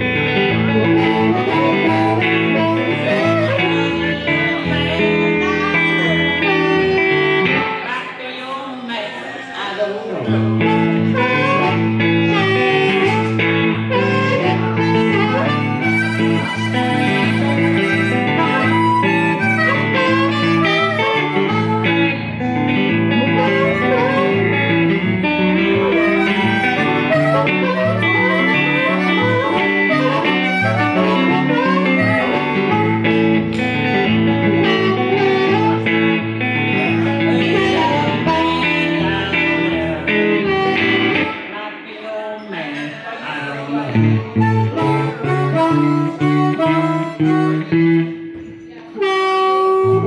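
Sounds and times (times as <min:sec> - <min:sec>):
harmonica bending notes: 0:00.0 - 0:08.1, 0:10.2 - 0:41.7, 0:43.9 - 0:50.0
electric guitar accompaniment: 0:00.0 - 0:08.2, 0:10.0 - 0:42.0, 0:43.5 - 0:50.0.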